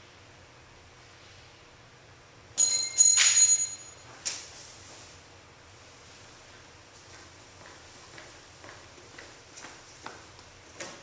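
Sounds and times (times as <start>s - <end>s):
metal nail clinking on hard floor: 2.6s - 4.0s.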